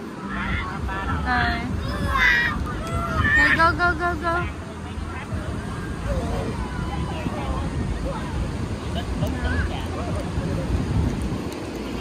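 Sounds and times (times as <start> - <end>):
ocean surf: 0.0 - 12.0
wind buffeting microphone: 0.0 - 12.0.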